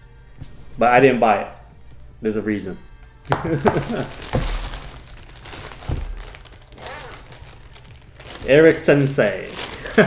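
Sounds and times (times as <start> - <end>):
plastic bag crinkling: 3.3 - 10.0.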